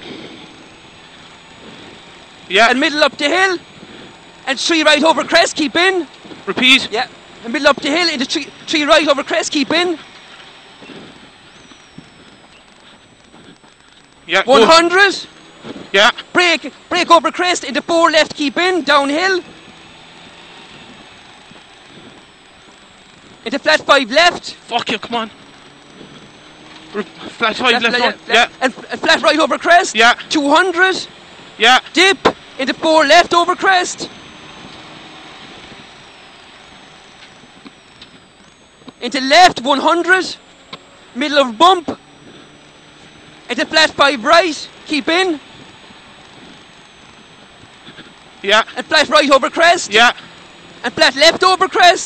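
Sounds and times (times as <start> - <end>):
car engine and tyre noise: 0.0 - 52.0
faint high whine: 0.0 - 52.0
gravel patter: 0.0 - 52.0.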